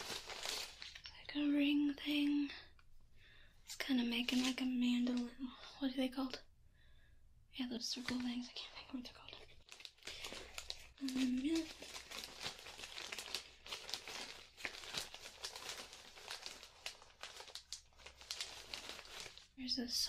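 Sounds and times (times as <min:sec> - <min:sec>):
plastic bag crinkling: 0:00.0 - 0:01.4, 0:03.7 - 0:05.3, 0:08.0 - 0:19.7.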